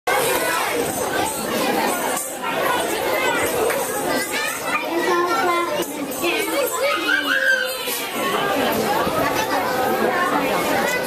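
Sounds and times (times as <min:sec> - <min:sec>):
children chattering: 0:00.1 - 0:11.0.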